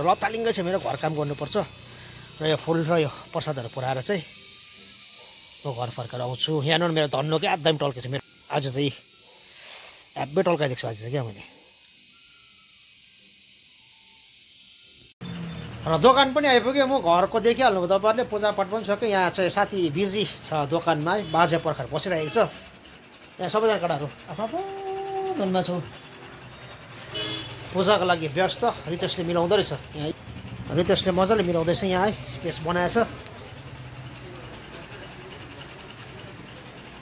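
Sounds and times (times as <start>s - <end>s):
person talking: 23.4s - 26.0s.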